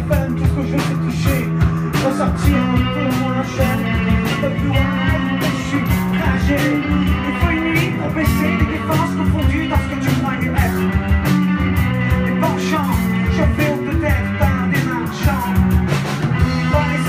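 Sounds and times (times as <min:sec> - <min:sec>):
bass guitar: 0:00.0 - 0:17.0
drum kit hits: 0:00.0 - 0:17.0
electric guitar: 0:00.0 - 0:17.0
person singing: 0:00.0 - 0:17.0.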